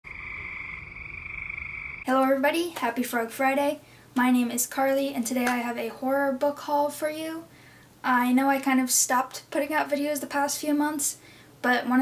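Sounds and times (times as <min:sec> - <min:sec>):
frog trilling: 0:00.0 - 0:02.1.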